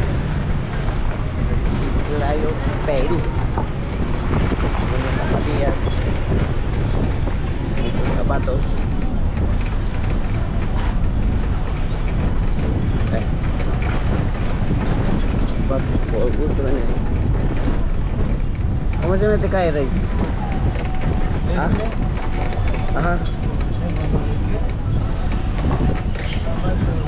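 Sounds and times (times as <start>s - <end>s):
engine and road rumble: 0.0s - 27.0s
voices: 0.0s - 27.0s
wind buffeting microphone: 0.0s - 27.0s.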